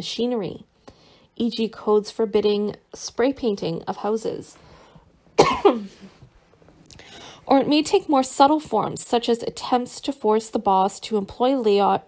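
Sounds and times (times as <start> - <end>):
person coughing: 5.4 - 6.2.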